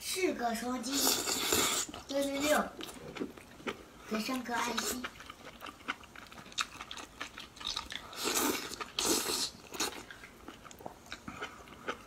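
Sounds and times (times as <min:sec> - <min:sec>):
close chewing with wet clicks: 0:01.1 - 0:12.0.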